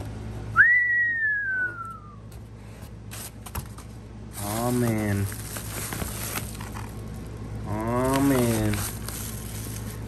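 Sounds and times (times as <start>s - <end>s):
person whistling sliding down: 0.6s - 2.2s
paper packing rustling: 2.7s - 10.0s.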